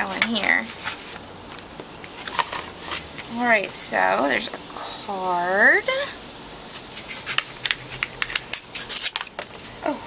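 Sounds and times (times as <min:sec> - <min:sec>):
paper and plastic rustling: 0:00.2 - 0:03.3, 0:06.7 - 0:09.8.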